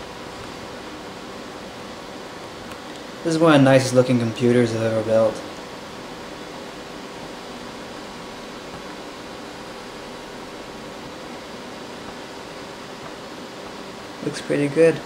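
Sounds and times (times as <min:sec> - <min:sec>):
computer fans whooshing: 0:00.0 - 0:15.0.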